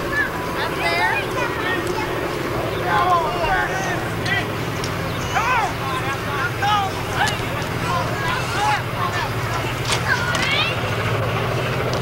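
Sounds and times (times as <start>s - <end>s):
distant voices calling out: 0.0s - 12.0s
steady low hum: 0.0s - 12.0s.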